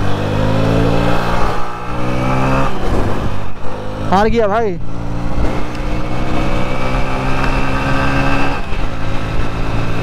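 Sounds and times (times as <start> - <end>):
motorcycle engine revving high: 0.0 - 10.0
wind buffeting microphone: 0.4 - 10.0.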